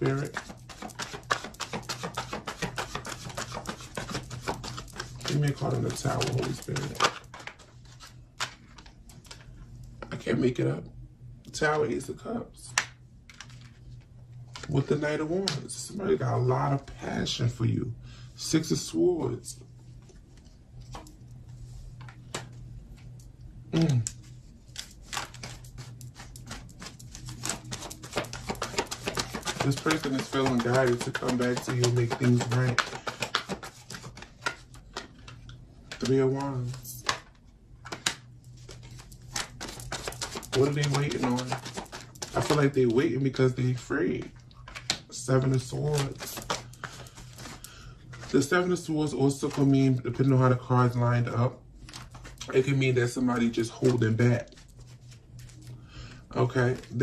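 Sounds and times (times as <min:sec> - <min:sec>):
cards being shuffled: 0:00.0 - 0:09.5, 0:12.7 - 0:15.7, 0:23.8 - 0:49.7, 0:51.8 - 0:55.8, 0:56.4 - 0:57.0
low room hum: 0:00.0 - 0:57.0.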